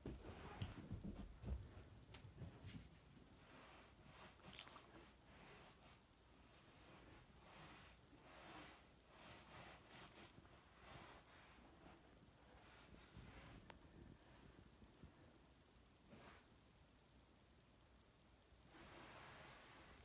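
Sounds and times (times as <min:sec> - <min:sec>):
faint soft rustles: 0:00.0 - 0:20.0.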